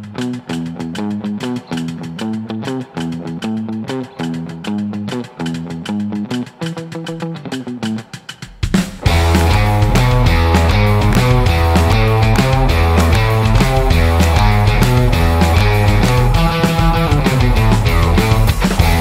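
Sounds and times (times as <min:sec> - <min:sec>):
sparse guitar riff: 0:00.0 - 0:08.2, 0:09.0 - 0:19.0
rock band playing: 0:00.0 - 0:19.0.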